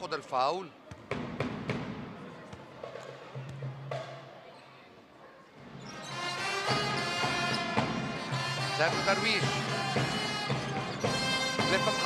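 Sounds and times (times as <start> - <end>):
basketball bouncing on court: 0.8 - 4.2.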